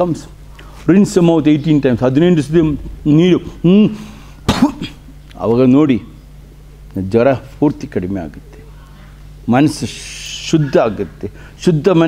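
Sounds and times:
man coughing: 4.4s - 5.1s.

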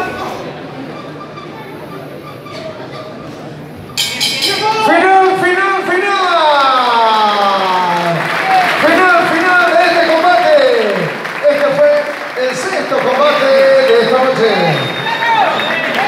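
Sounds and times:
crowd noise: 0.0s - 16.0s.

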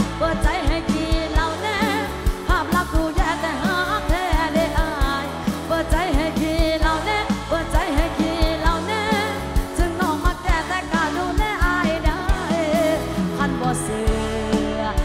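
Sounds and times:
fast drum beat: 0.0s - 15.0s
woman singing into a microphone: 0.0s - 15.0s.

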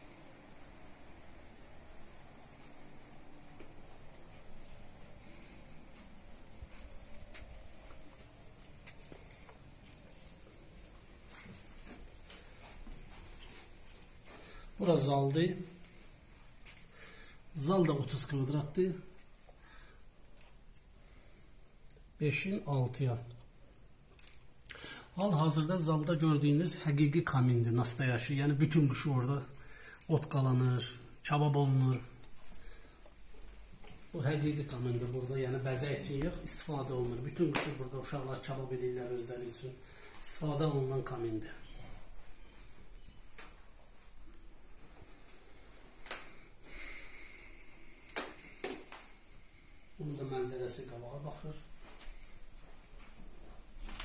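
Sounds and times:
breathing close to microphone: 16.8s - 17.5s, 24.7s - 25.2s, 29.6s - 30.1s, 45.0s - 48.6s.

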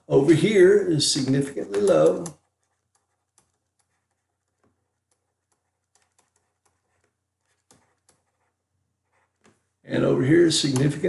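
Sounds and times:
stylus tapping on tablet: 1.7s - 3.9s.

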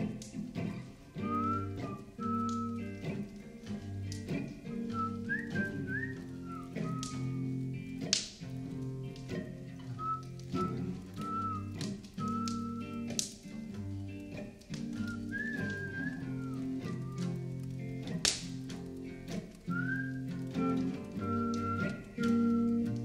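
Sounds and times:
whistled melody: 1.2s - 8.0s, 9.4s - 13.4s, 14.8s - 18.2s, 19.6s - 23.0s.

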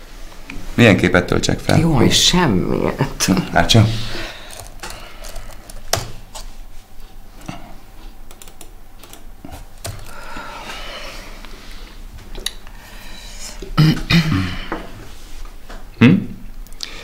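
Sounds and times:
laptop keys and mouse clicking: 4.5s - 6.5s, 8.2s - 10.2s.

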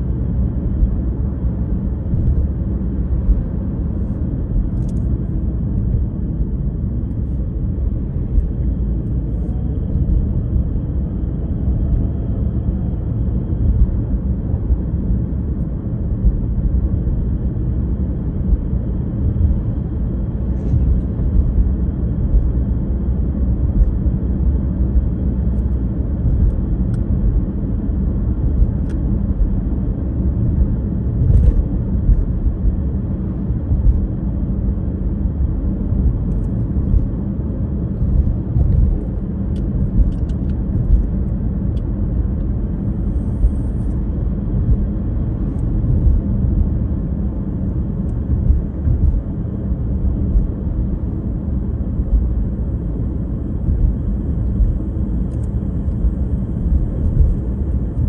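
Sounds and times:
car cabin road rumble: 0.0s - 58.0s.

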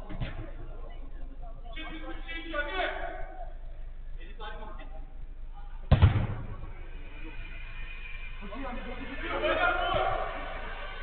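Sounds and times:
football kicked hard thud: 5.9s - 6.5s.

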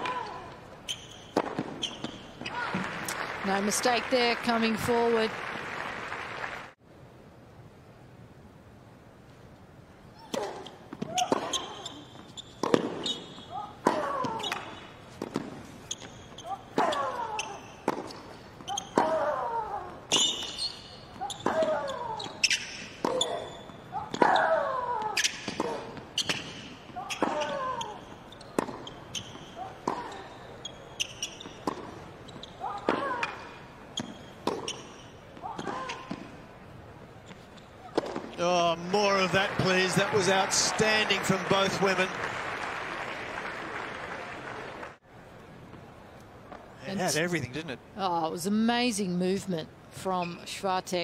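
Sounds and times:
shoe squeaks: 0.8s - 2.6s, 10.4s - 14.8s, 15.8s - 17.9s, 18.6s - 19.1s, 20.1s - 24.5s, 25.2s - 36.2s, 37.2s - 38.0s, 50.1s - 50.5s
racket striking tennis ball: 1.3s - 2.2s, 12.6s - 13.2s, 28.6s - 30.2s, 32.8s - 36.4s, 37.9s - 38.4s.

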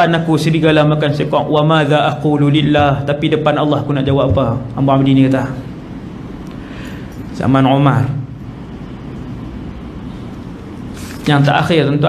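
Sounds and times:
man speaking: 0.0s - 5.7s, 7.3s - 8.3s, 11.2s - 12.0s
low room hum: 0.0s - 12.0s.

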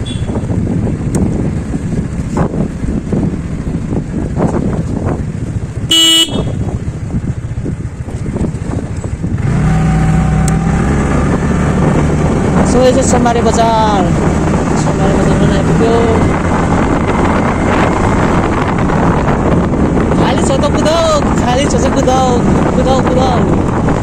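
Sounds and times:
wind on microphone: 0.0s - 24.0s
scooter engine: 4.8s - 18.8s
horn beep: 5.9s - 6.6s.

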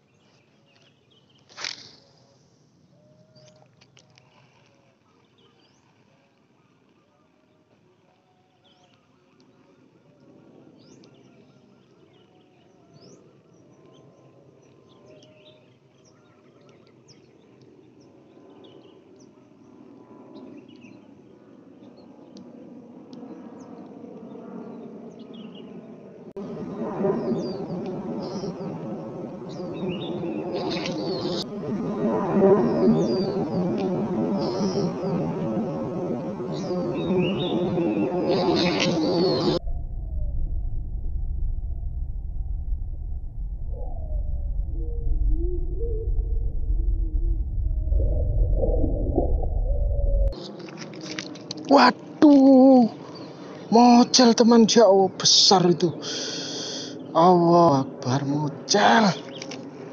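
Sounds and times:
insects: 0.0s - 40.4s, 50.3s - 59.9s.

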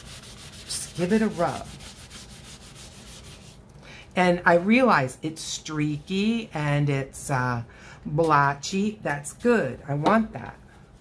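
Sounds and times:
cloth scrubbing over paper: 0.0s - 3.6s.

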